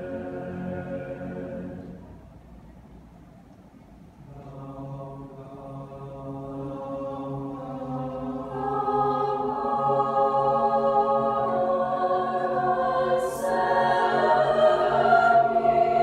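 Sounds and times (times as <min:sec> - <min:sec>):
choir singing a cappella: 0:00.0 - 0:02.2, 0:04.3 - 0:16.0.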